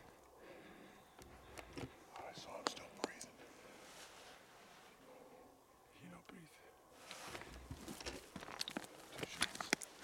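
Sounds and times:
footsteps on loose stones: 0:07.1 - 0:10.0.

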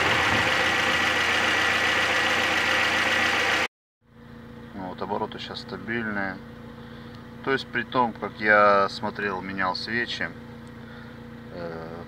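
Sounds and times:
petrol engine idling: 0:00.0 - 0:04.7.

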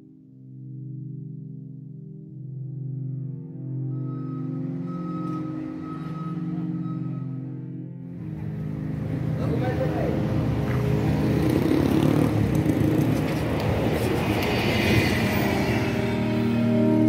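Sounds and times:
bus driving past: 0:03.9 - 0:17.0
city street traffic: 0:03.9 - 0:17.0.

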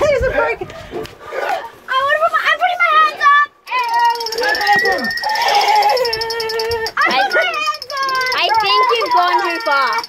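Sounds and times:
child whining cry: 0:05.2 - 0:07.5.

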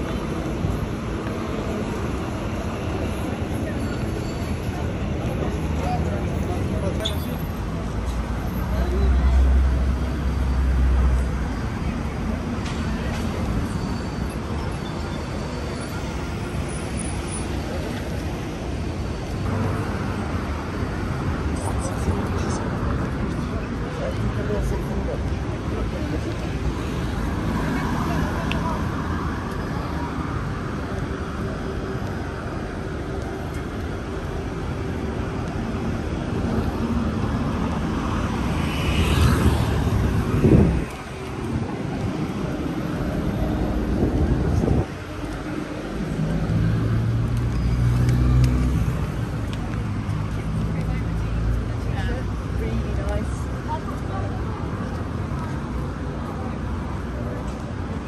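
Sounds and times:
road traffic: 0:00.0 - 0:58.0.

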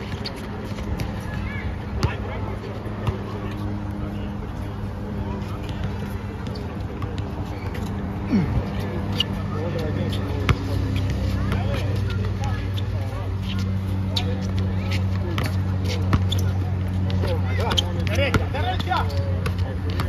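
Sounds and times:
players' voices: 0:00.0 - 0:20.0
basketball bouncing on hard court: 0:15.4 - 0:20.0.

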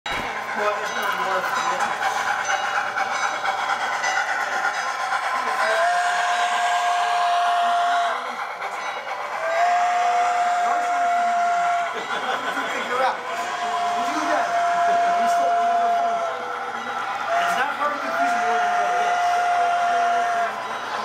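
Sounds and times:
model train rolling: 0:00.1 - 0:21.0
model steam whistle blasts: 0:05.6 - 0:08.3, 0:09.4 - 0:12.0, 0:13.4 - 0:16.5, 0:17.3 - 0:20.6.

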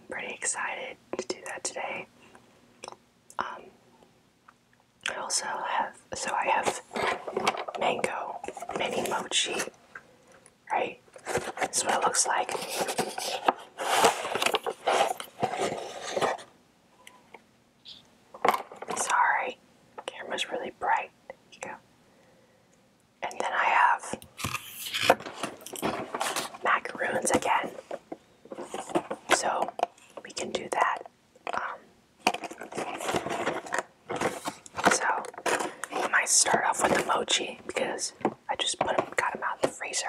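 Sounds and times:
person whispering: 0:00.0 - 0:02.1, 0:03.4 - 0:03.7, 0:05.1 - 0:06.8, 0:07.8 - 0:09.7, 0:10.7 - 0:11.0, 0:11.6 - 0:13.4, 0:18.9 - 0:21.8, 0:23.2 - 0:25.0, 0:26.6 - 0:27.8, 0:29.3 - 0:31.9, 0:34.8 - 0:35.3, 0:36.0 - 0:40.0
cardboard box being opened: 0:12.4 - 0:16.5
plastic tray scraping cardboard: 0:12.4 - 0:16.5.

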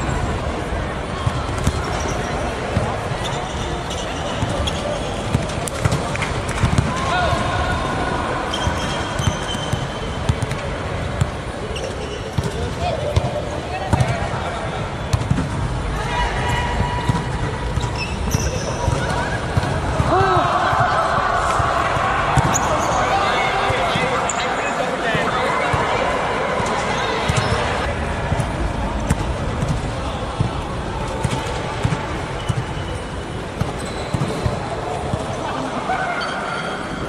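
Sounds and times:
shoes squeaking on court: 0:01.6 - 0:05.6, 0:08.5 - 0:14.1, 0:17.7 - 0:19.5, 0:32.3 - 0:35.4.

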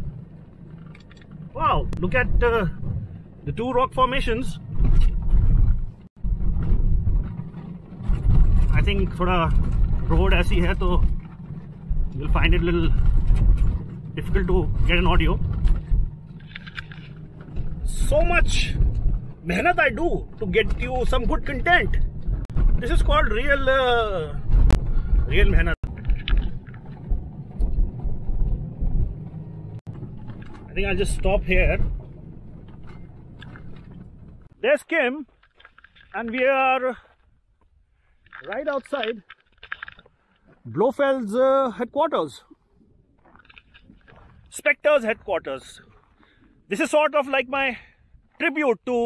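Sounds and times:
car road and engine rumble: 0:00.0 - 0:36.2
wheels jolting over bumps: 0:00.0 - 0:37.4.

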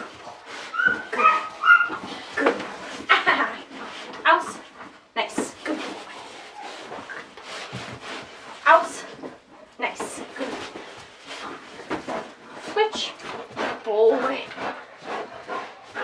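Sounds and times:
dog tug scuffling and thumps: 0:00.0 - 0:16.0.

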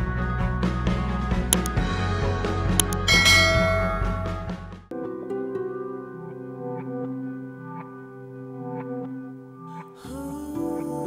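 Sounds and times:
background music: 0:00.0 - 0:11.0
short click: 0:02.8 - 0:03.1
bright bell-like chime: 0:03.1 - 0:04.6.

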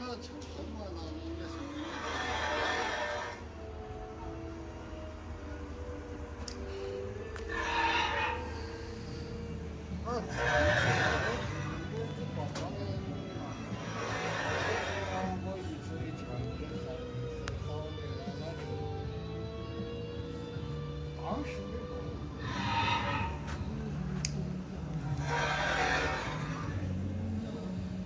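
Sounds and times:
recorded dinosaur roars: 0:01.6 - 0:03.5, 0:07.5 - 0:08.6, 0:10.3 - 0:11.8, 0:13.8 - 0:15.3, 0:22.4 - 0:23.5, 0:25.2 - 0:26.9.

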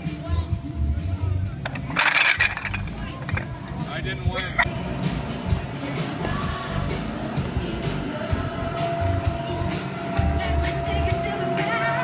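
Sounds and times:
wooden blocks clattering onto grass: 0:01.6 - 0:03.5.

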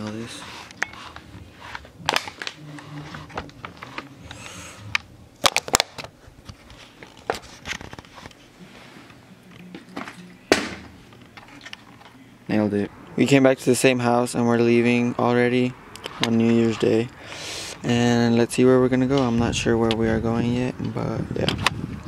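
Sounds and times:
bottle landing thud: 0:10.5 - 0:11.0.

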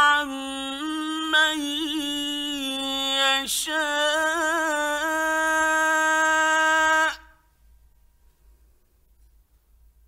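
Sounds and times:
man reciting a held note: 0:00.0 - 0:07.5.

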